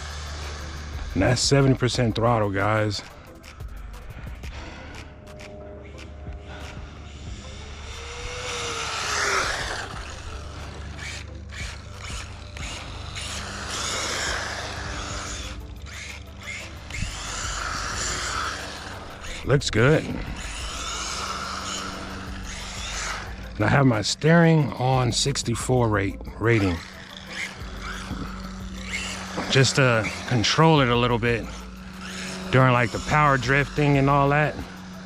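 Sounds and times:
rc car motor whine: 0.0s - 35.0s.

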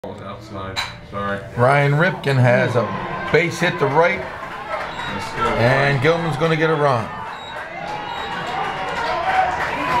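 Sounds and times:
distant chatter: 1.9s - 10.0s
distant people shouting: 2.1s - 10.0s.

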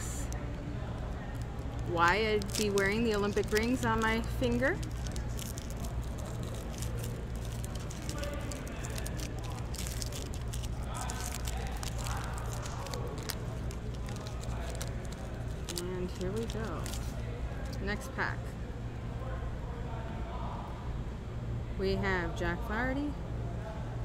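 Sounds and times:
faint voices: 0.0s - 22.4s
foil wrapper crinkling: 1.0s - 18.0s.

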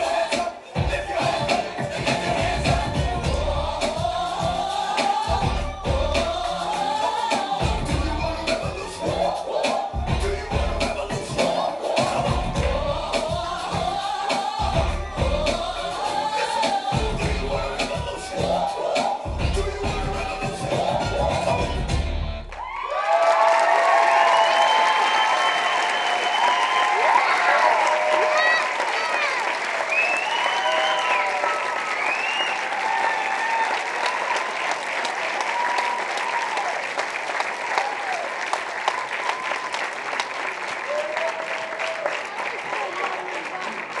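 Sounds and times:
dance music: 0.0s - 22.7s, 26.8s - 29.9s
audience applauding and cheering: 22.4s - 44.0s.

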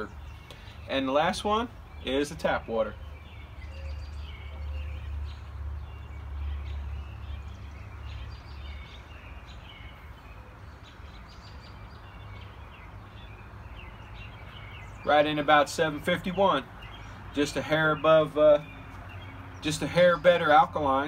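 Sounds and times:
birds chirping: 0.0s - 21.0s.

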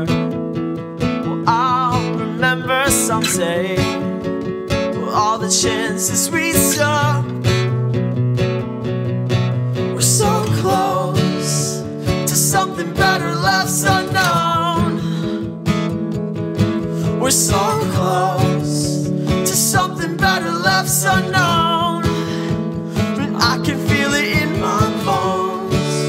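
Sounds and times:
man singing with vibrato: 0.0s - 0.3s, 1.2s - 4.1s, 4.9s - 7.4s, 9.9s - 15.5s, 16.9s - 26.0s
acoustic guitar strumming: 0.0s - 26.0s.

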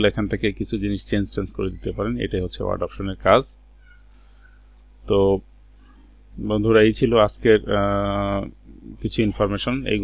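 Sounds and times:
man speaking: 0.0s - 3.6s, 5.1s - 5.4s, 6.4s - 10.0s.

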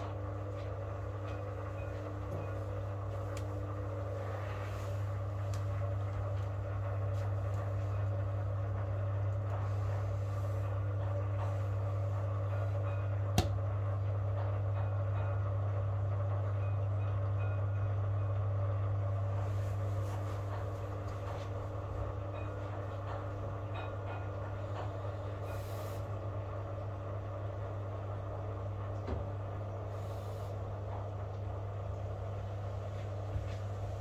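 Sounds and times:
washing machine humming: 0.0s - 34.0s.

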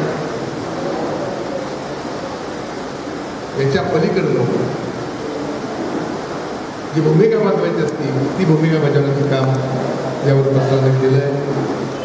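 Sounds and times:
steady rushing background noise: 0.0s - 12.0s
man speaking into a microphone: 3.6s - 4.8s, 6.9s - 11.8s.

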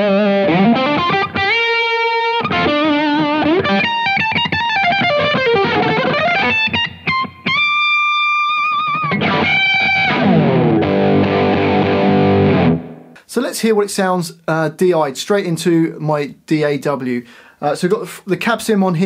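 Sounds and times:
distorted electric guitar lead: 0.0s - 13.2s.

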